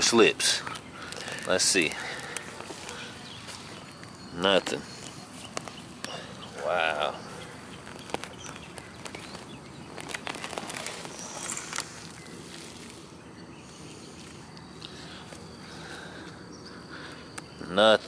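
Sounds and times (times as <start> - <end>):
soil crackling and pattering: 0.0 - 16.4
outdoor background noise: 0.0 - 18.0
hands scraping in soil: 0.7 - 15.0.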